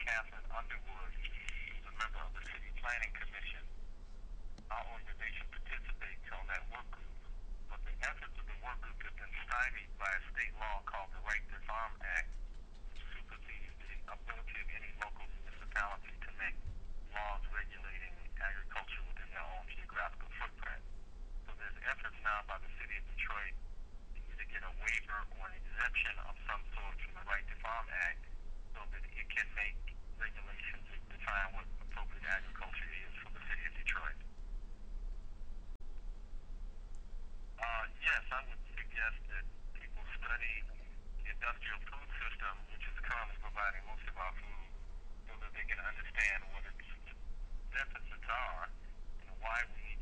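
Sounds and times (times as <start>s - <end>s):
person talking over telephone: 0.0s - 3.7s, 4.7s - 12.4s, 13.0s - 20.8s, 21.5s - 23.6s, 24.2s - 34.2s, 37.6s - 50.0s
low steady hum: 0.0s - 50.0s.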